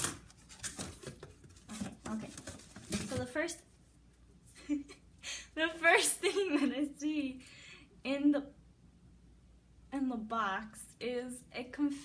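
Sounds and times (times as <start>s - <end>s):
paper and packaging rustling: 0.0s - 3.6s.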